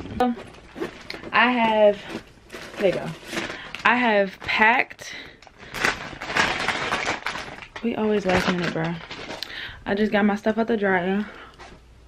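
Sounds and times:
handling noise rustling clothing: 0.0 - 3.8.

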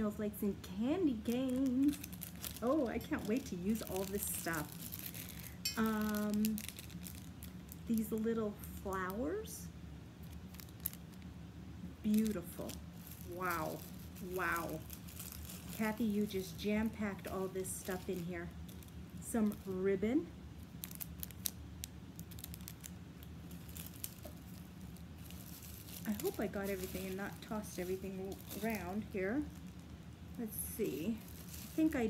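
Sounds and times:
low room hum: 0.0 - 32.0
plastic packet crinkling: 1.0 - 9.2, 10.2 - 11.3, 12.1 - 19.9, 20.6 - 32.0.

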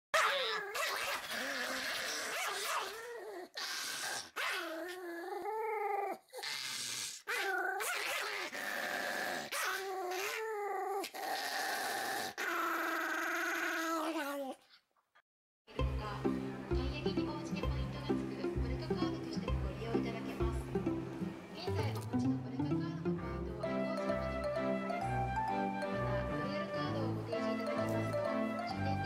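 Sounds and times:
small dog growling: 0.2 - 14.7.

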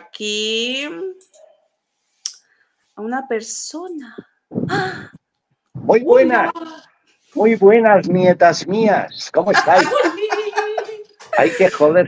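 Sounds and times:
person speaking: 5.8 - 12.0.

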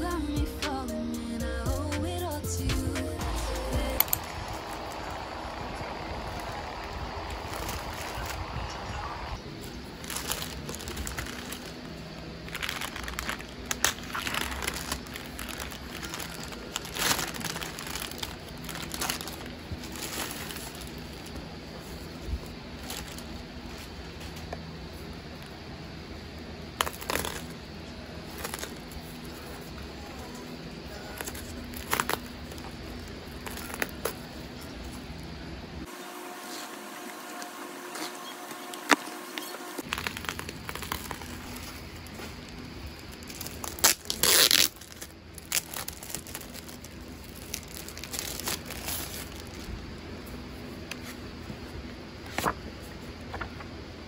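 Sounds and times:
plastic mailer crinkling: 3.4 - 24.4, 26.8 - 29.7, 36.5 - 49.7.

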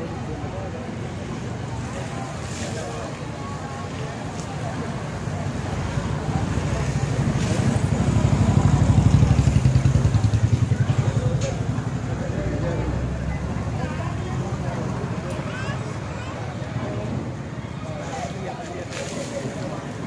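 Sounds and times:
people talking: 0.0 - 20.0
motorbike passing: 4.1 - 18.0.

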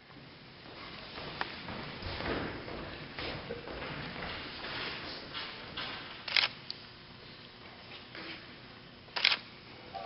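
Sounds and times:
faint hall hiss: 0.0 - 10.0.

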